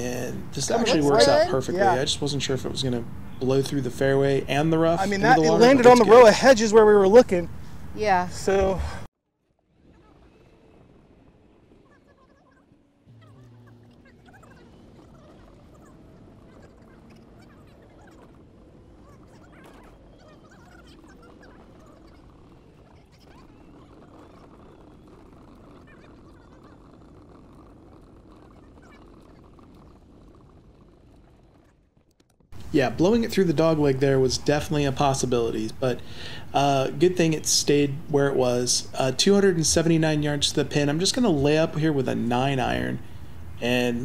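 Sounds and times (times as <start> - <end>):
low steady hum: 9.9 - 28.6
bird calls: 11.8 - 30.5.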